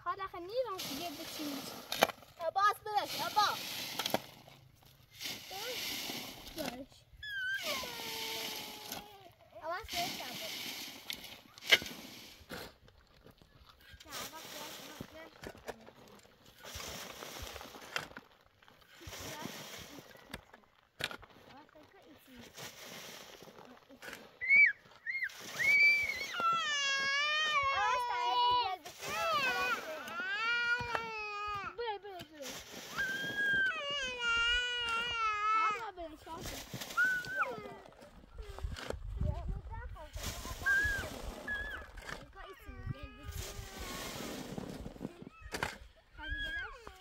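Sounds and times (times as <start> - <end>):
thuds digging in dry soil: 0.4 - 20.4, 36.2 - 46.5
second child's voice: 6.6 - 10.4, 24.4 - 31.8
child squealing and calling: 7.2 - 9.4, 24.4 - 31.8, 32.9 - 35.9, 36.9 - 37.8, 40.5 - 44.2, 45.2 - 47.0.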